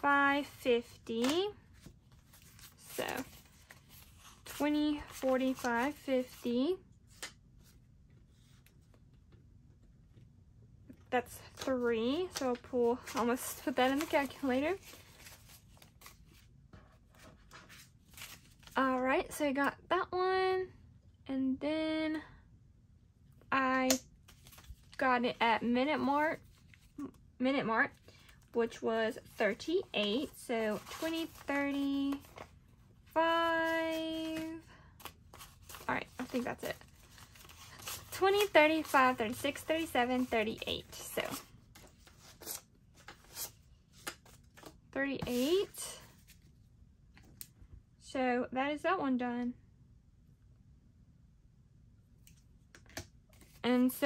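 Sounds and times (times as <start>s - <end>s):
paper banknotes being counted: 11.4s - 16.2s, 29.1s - 32.5s, 33.2s - 43.6s.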